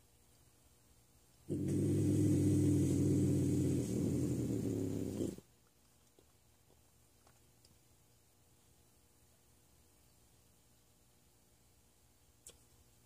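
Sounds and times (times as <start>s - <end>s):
bobcat growling: 1.5s - 5.4s.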